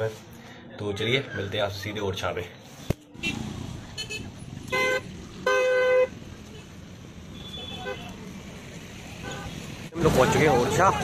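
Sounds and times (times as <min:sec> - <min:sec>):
low rumble of traffic: 0:00.0 - 0:11.0
vehicle horns honking: 0:03.2 - 0:06.7, 0:07.3 - 0:08.2, 0:09.2 - 0:09.6.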